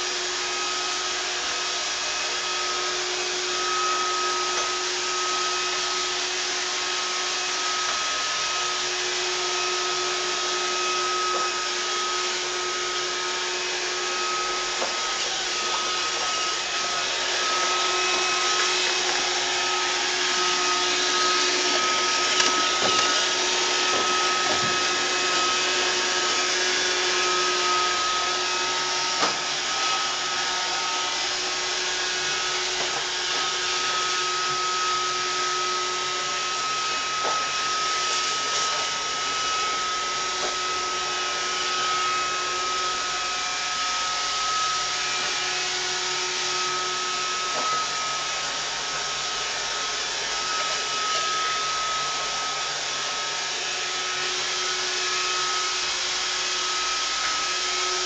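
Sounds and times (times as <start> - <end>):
robot vacuum whirring: 0.4 - 58.0.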